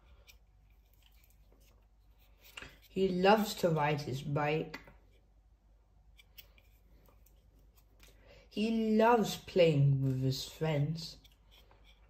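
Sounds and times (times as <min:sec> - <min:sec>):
cardboard page turning: 0:00.7 - 0:03.0.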